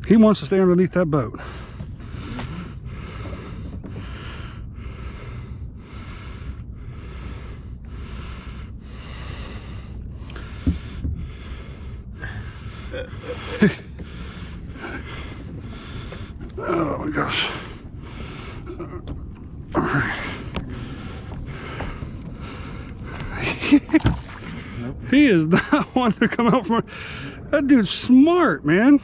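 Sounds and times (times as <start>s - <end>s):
man panting: 1.4s - 19.1s.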